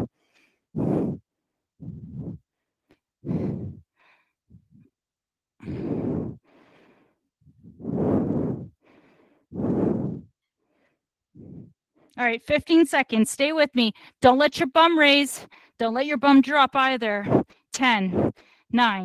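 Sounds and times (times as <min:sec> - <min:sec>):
woman breathing hard: 0:00.0 - 0:04.9, 0:05.6 - 0:12.2.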